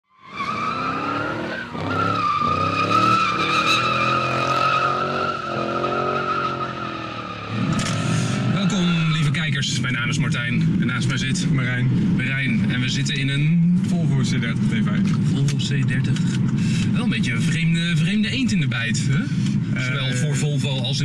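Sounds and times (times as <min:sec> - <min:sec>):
car tyres squealing: 0:00.1 - 0:09.6
road noise: 0:00.1 - 0:21.0
car engine running: 0:05.1 - 0:21.0.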